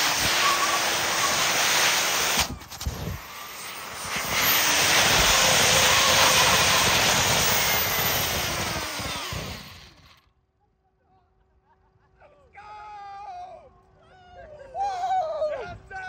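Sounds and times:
jet-like rush of fire and air: 0.0 - 10.1.

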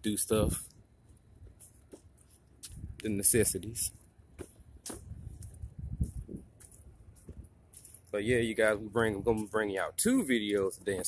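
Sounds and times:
footsteps: 1.0 - 11.0.

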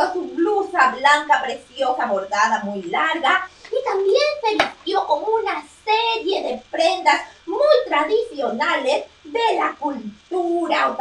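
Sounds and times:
child-like voice talking: 0.0 - 11.0.

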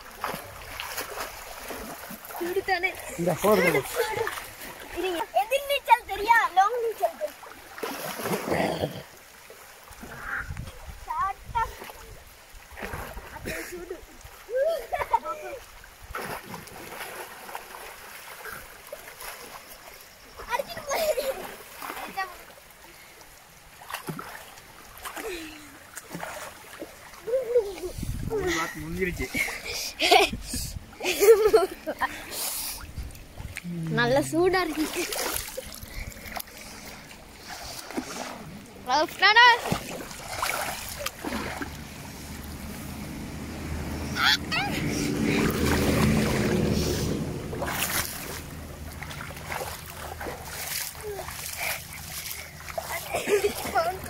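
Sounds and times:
river water splashing: 0.0 - 54.0
excited voices calling out: 44.0 - 45.2.

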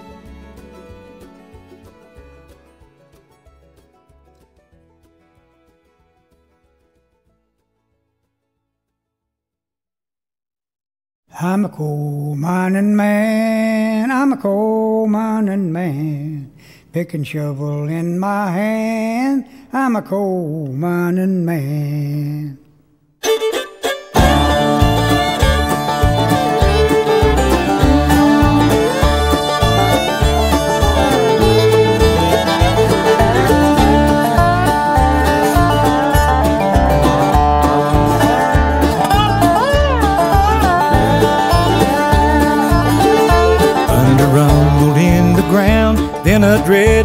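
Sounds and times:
bluegrass band playing: 0.0 - 7.0, 23.2 - 47.0.

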